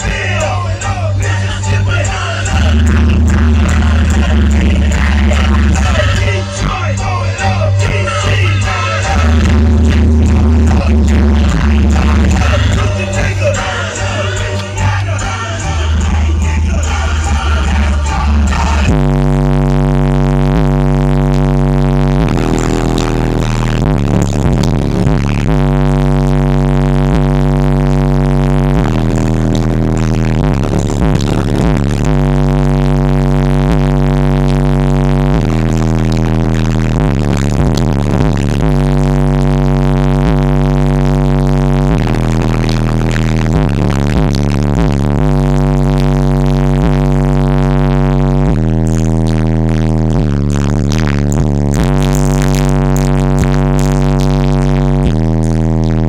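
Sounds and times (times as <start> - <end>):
bass-heavy music through subwoofer: 0.0 - 56.0.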